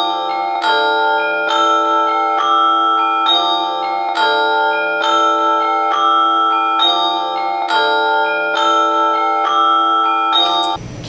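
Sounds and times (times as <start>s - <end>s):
bell-like mallet notes: 0.0s - 10.8s.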